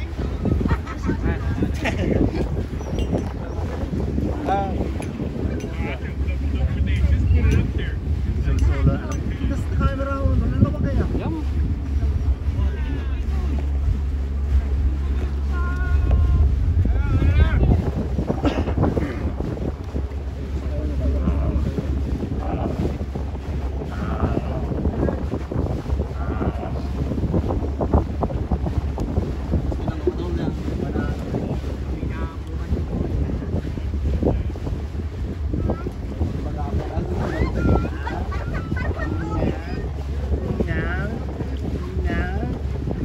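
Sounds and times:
faint voices: 0.0s - 43.0s
water washing and slapping: 0.0s - 43.0s
wind buffeting microphone: 0.0s - 43.0s.

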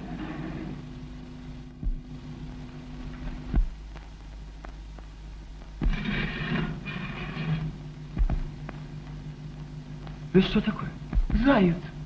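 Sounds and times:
film soundtrack hum and hiss: 0.0s - 12.0s
dull low thump: 1.8s - 2.1s, 3.2s - 3.8s, 5.7s - 6.1s, 8.1s - 8.8s, 11.1s - 11.6s.

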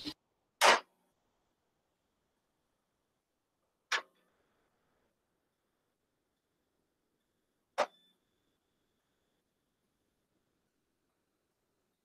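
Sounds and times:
faint high ringing tone: 6.2s - 10.7s.

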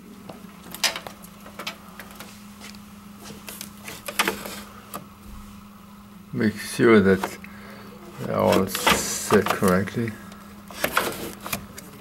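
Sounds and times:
machine low hum: 0.0s - 12.0s.

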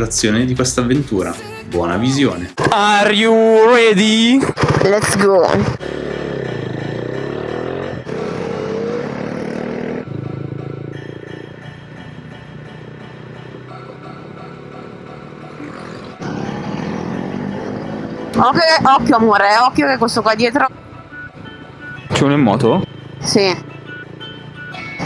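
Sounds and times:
motorcycle engines accelerating: 4.0s - 25.0s.

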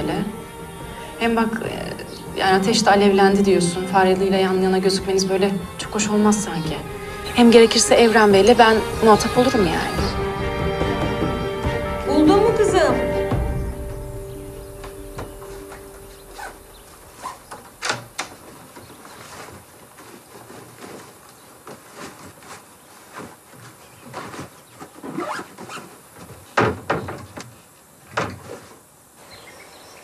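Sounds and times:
clothes rustling: 14.6s - 26.6s.

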